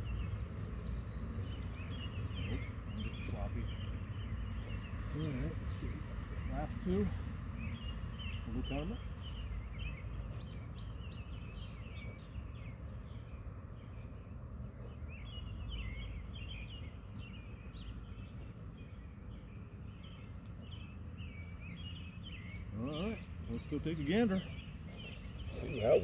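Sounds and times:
birds chirping: 0:00.0 - 0:26.0
low outdoor rumble: 0:00.0 - 0:26.0.

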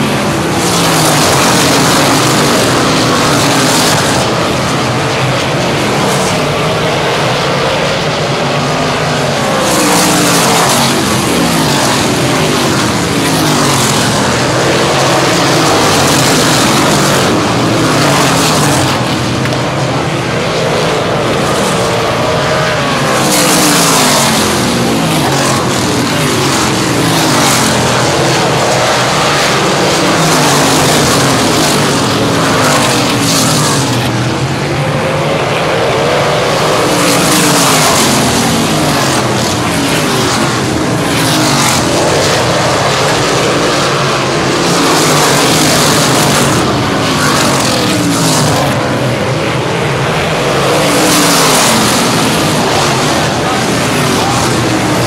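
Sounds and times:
race car engines: 0:00.0 - 0:55.0.

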